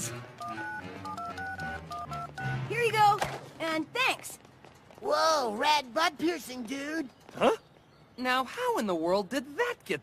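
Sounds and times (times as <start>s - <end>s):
phone keypad beeps: 0.4s - 3.0s.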